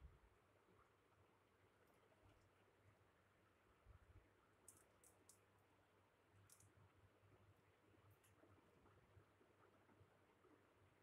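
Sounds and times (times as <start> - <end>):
faint high-pitched clicks: 4.6 - 5.6, 6.3 - 6.8.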